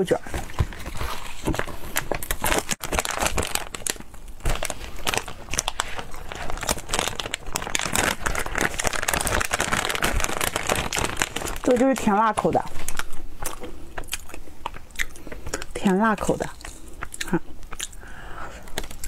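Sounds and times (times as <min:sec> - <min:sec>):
plastic snack packets crinkling: 0:00.2 - 0:18.0, 0:18.6 - 0:19.0.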